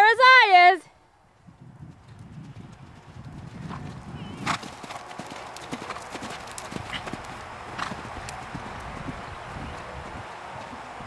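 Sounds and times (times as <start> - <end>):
horse hoofbeats on sand: 1.8 - 11.0.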